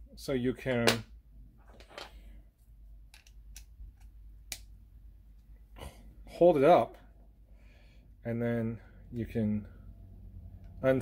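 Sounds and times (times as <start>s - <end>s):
clicks and taps of small metal parts: 3.1s - 4.7s.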